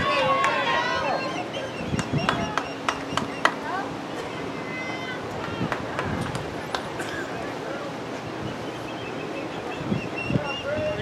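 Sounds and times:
distant voices calling out: 0:00.0 - 0:11.0
open-air noise: 0:00.0 - 0:11.0.

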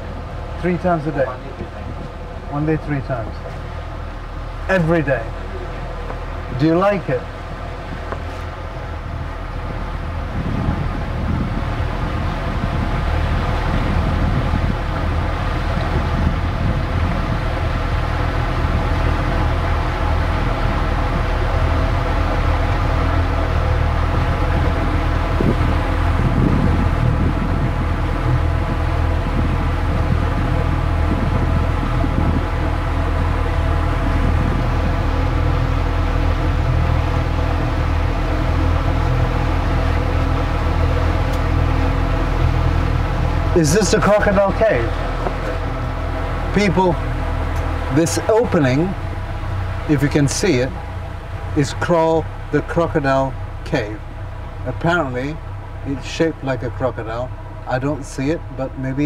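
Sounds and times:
boat engine running: 0:00.0 - 0:59.0.

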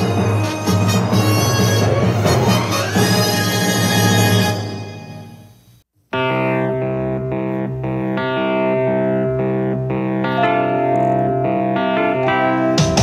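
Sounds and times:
drums and band: 0:00.0 - 0:05.3, 0:12.6 - 0:13.0
picked chord pattern: 0:06.1 - 0:13.0.

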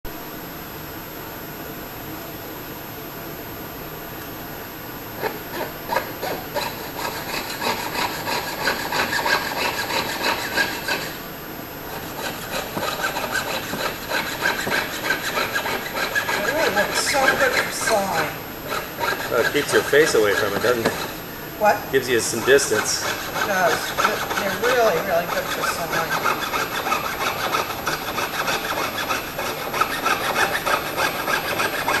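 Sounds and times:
small saw cutting back and forth: 0:05.2 - 0:11.2, 0:11.9 - 0:32.0.

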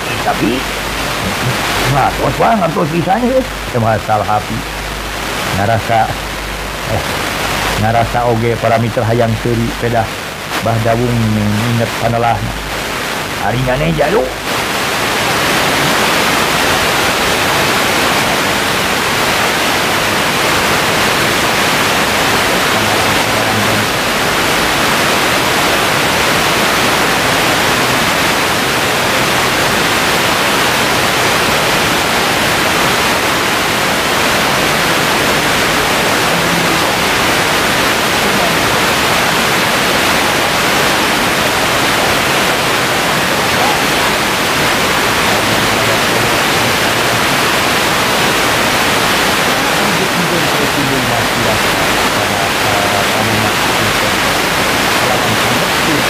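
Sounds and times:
loud rushing hiss: 0:00.0 - 0:56.0.

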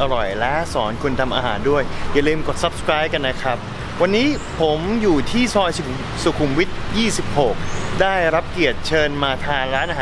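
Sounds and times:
man speaking: 0:00.0 - 0:10.0.

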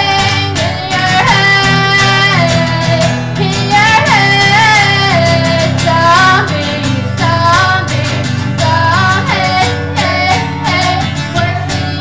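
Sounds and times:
acoustic guitar strumming: 0:00.0 - 0:12.0
woman singing: 0:00.0 - 0:12.0.

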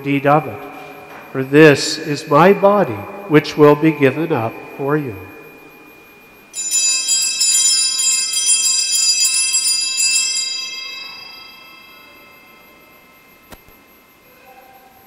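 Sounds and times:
altar bells ringing: 0:00.0 - 0:15.0.

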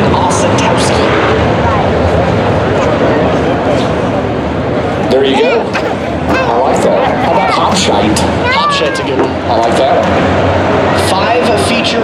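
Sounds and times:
race car engines roaring: 0:00.0 - 0:12.0.

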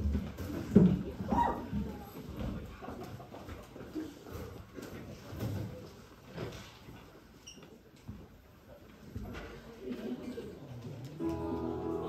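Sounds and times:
audience rustle: 0:00.0 - 0:12.0
faint footsteps and shuffling: 0:00.0 - 0:12.0.

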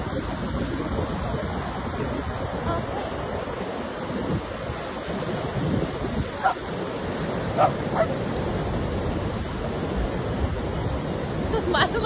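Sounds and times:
ocean surf washing: 0:00.0 - 0:12.0
dog barking: 0:06.4 - 0:06.6, 0:07.6 - 0:08.2.

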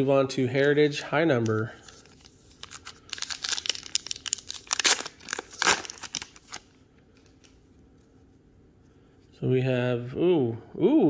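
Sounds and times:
plastic wrapper tearing and crinkling: 0:01.9 - 0:06.7.

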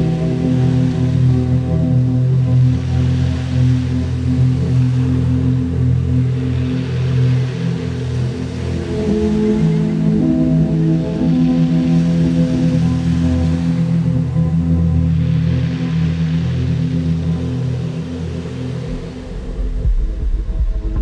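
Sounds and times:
ambient droning music: 0:00.0 - 0:21.0.

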